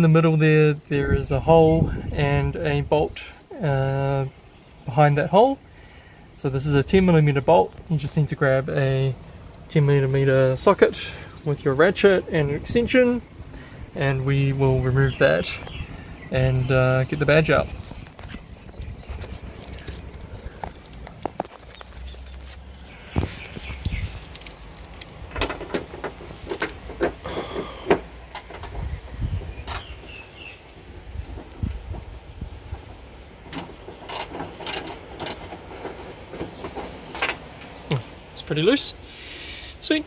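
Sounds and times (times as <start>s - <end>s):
metal clinks and knocks: 18.2s - 27.2s
ratchet clicking: 23.8s - 25.4s, 34.0s - 35.5s.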